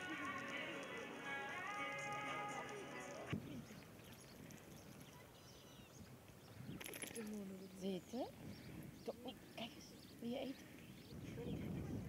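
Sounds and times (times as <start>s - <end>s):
music: 0.0s - 3.4s.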